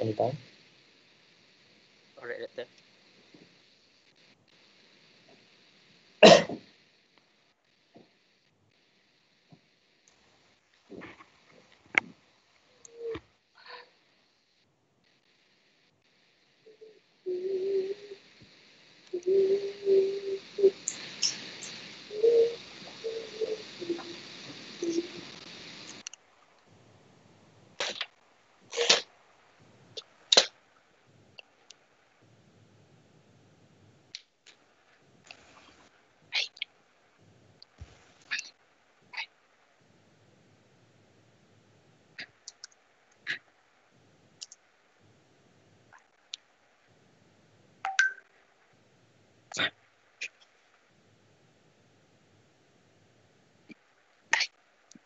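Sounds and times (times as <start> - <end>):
faint background noise: 0.0 - 55.0
microphone hiss: 0.0 - 55.0.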